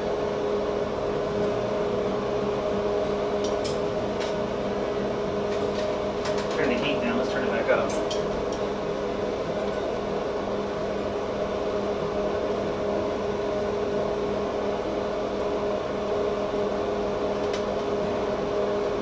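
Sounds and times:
kitchen fan motor humming: 0.0 - 19.0.

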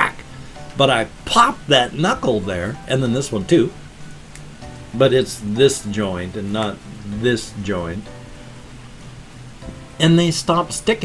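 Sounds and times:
quiet background music: 0.0 - 11.0
rain hiss: 0.0 - 11.0.

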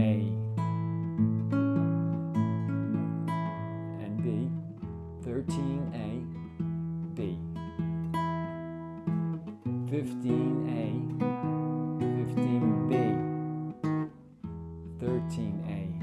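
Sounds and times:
fingerpicked classical guitar: 0.0 - 16.0.

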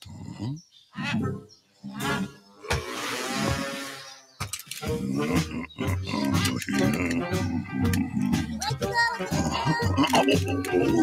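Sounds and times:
cartoon bear growling grunts: 4.9 - 8.6, 9.2 - 11.0.

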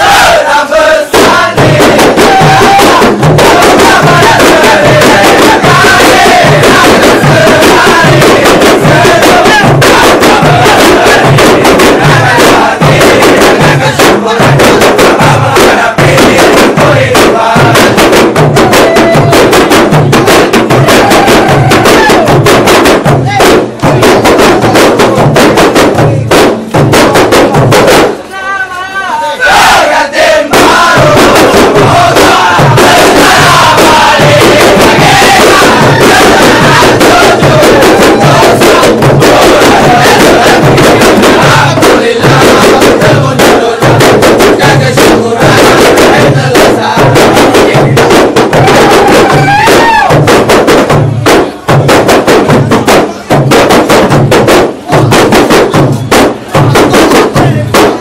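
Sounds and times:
single voice singing: 0.0 - 19.6, 28.2 - 50.2
crowd shouting and chanting: 0.0 - 25.4, 27.5 - 50.6, 52.6 - 53.5, 54.7 - 58.0
frame drums in fast rhythm: 0.0 - 58.0.

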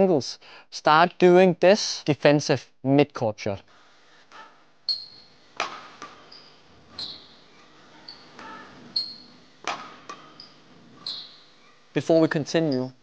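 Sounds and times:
racket hitting shuttlecock: 4.3 - 9.0, 9.6 - 11.3
shoes squeaking on court floor: 4.3 - 11.9, 12.5 - 13.0.

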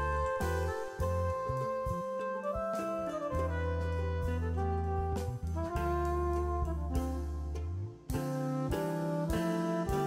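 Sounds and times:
jazz instrumental music: 0.0 - 10.0.

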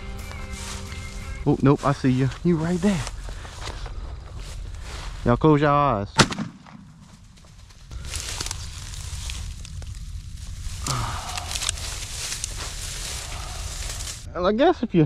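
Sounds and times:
rustling of dry grass: 0.0 - 14.3
gunshot: 6.2 - 7.0.

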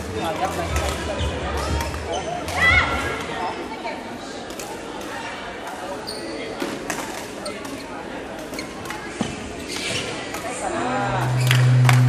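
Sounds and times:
shoe squeak: 2.1 - 2.4, 6.0 - 6.6, 8.5 - 10.2
overlapping voices: 10.6 - 12.0.

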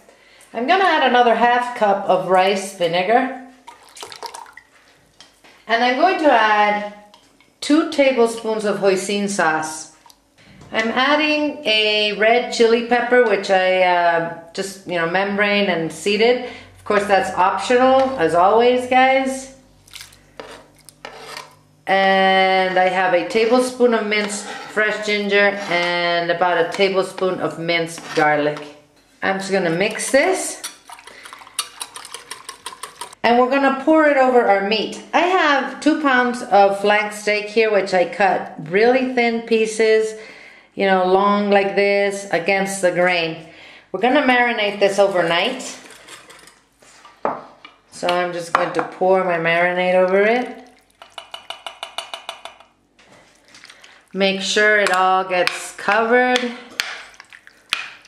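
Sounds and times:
knife scraping plastic cutting board: 20.4 - 21.5.

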